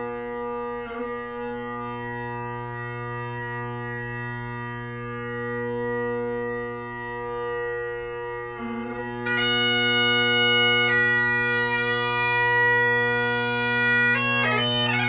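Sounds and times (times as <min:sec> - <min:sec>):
bagpipe drones droning: 0:00.0 - 0:15.0.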